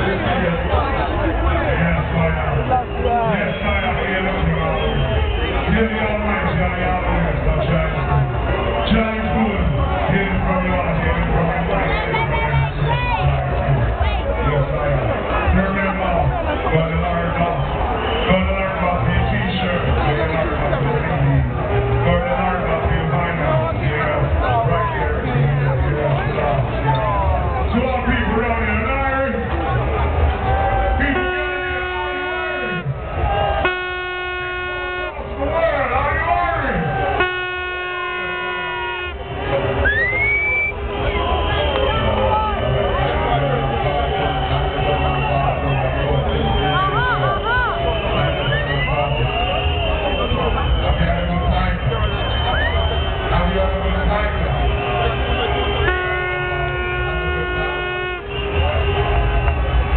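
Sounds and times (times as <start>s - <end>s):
long horn blasts: 31.0s - 35.3s, 37.0s - 39.8s, 54.3s - 59.9s.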